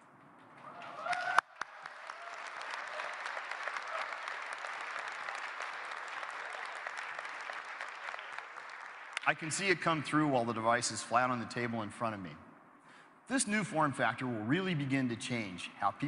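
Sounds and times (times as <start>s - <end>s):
audience applause: 0.6s - 9.6s.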